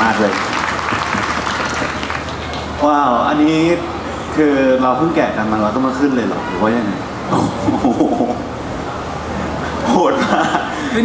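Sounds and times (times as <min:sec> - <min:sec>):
audience applauding: 0:00.0 - 0:03.1.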